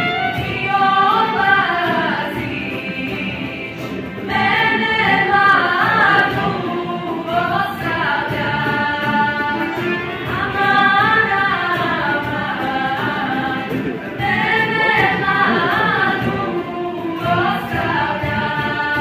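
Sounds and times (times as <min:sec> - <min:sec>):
women singing together: 0:00.0 - 0:19.0.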